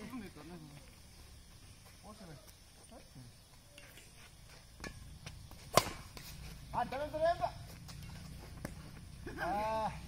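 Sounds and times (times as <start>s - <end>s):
racket smacking shuttlecock: 4.8s - 6.5s.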